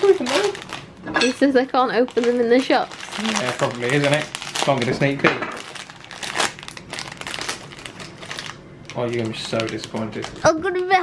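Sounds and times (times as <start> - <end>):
foil wrapper crinkling: 0.0 - 1.0, 1.9 - 11.0.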